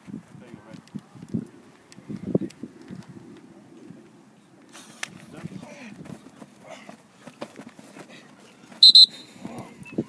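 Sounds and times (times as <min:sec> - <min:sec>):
shrill whistle blasts: 0:08.8 - 0:09.3.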